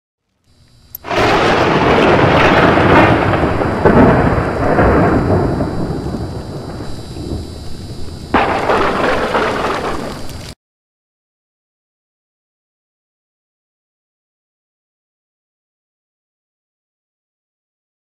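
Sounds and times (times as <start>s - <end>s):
thunder crack: 1.0s - 10.6s
thunder rumble: 1.0s - 10.6s.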